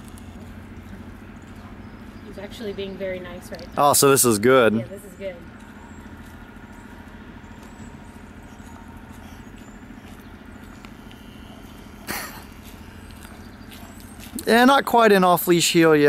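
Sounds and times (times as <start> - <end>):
vehicle engine idling: 0.0 - 16.0.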